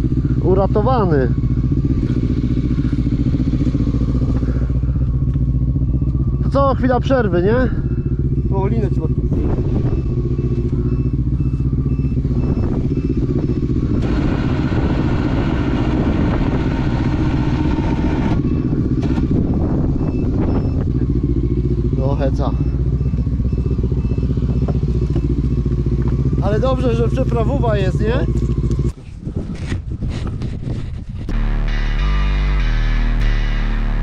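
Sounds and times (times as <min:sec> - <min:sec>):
quad engine idling: 0:00.0 - 0:29.0.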